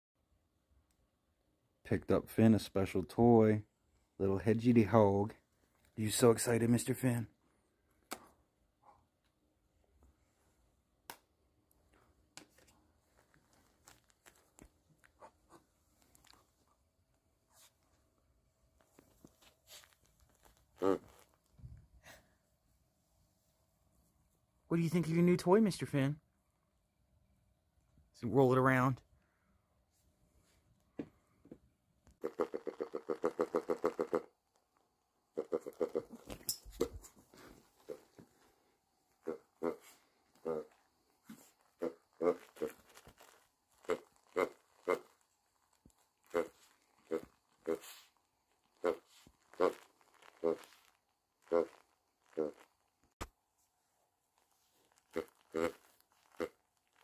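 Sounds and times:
dog grunting: 0:35.4 - 0:36.3, 0:39.2 - 0:40.8, 0:41.7 - 0:42.8, 0:43.8 - 0:45.1, 0:46.3 - 0:48.1, 0:48.8 - 0:50.8.

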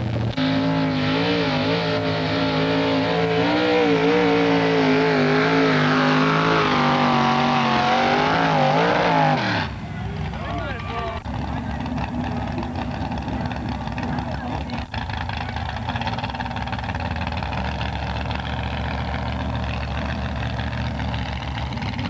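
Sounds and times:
truck engine idling: 0:09.5 - 0:22.0.

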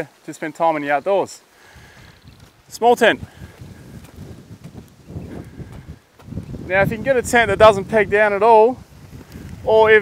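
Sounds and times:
footsteps on sandy dirt: 0:01.8 - 0:10.0.

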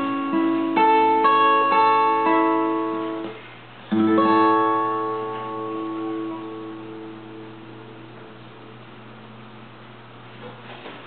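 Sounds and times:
acoustic guitar fingerstyle: 0:00.0 - 0:09.2
guitar chord ringing: 0:00.0 - 0:09.9.

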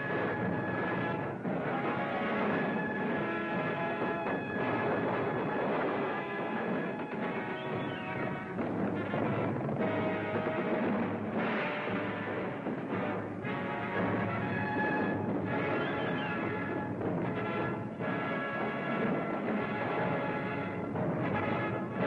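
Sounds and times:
orchestral film music: 0:00.0 - 0:22.0
timpani: 0:00.0 - 0:22.0.

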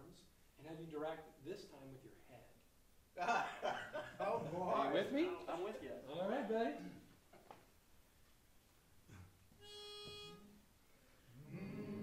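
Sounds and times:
pitch pipe note: 0:09.6 - 0:10.6.

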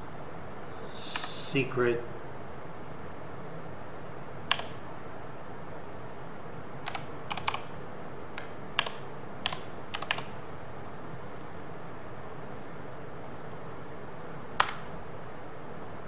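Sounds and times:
steady background hiss: 0:00.0 - 0:16.0
keyboard typing: 0:04.5 - 0:04.8, 0:06.8 - 0:07.7, 0:08.8 - 0:10.3.

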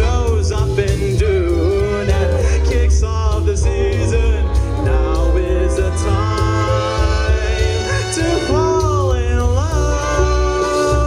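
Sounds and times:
amplified instrumental accompaniment: 0:00.0 - 0:11.0
man singing into microphone: 0:00.0 - 0:11.0.

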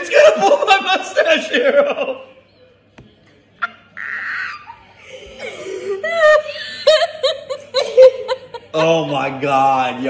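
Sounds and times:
people laughing hard: 0:00.0 - 0:02.4, 0:03.6 - 0:09.4.

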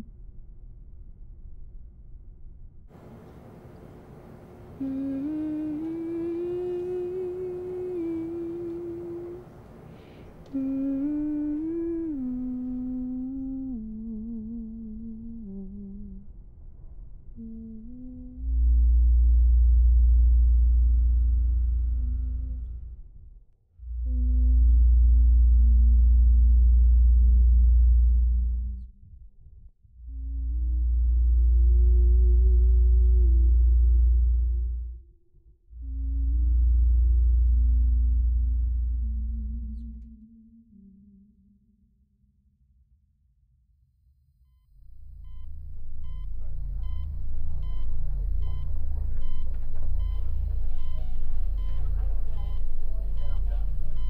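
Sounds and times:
deep low drone: 0:00.0 - 0:42.6, 0:44.7 - 0:54.0
faint sustained tones: 0:04.6 - 0:16.4, 0:44.8 - 0:54.0
woman humming: 0:04.7 - 0:16.3, 0:17.4 - 0:22.9, 0:23.8 - 0:28.9, 0:30.1 - 0:34.6, 0:35.8 - 0:41.6.

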